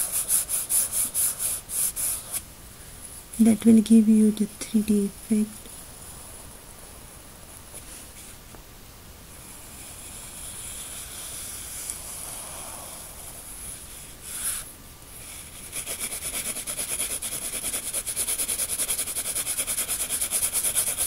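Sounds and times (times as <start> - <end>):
pencil scratching on paper: 0.0 - 2.4, 9.4 - 21.0
pencil shading strokes: 0.0 - 2.4, 9.4 - 21.0.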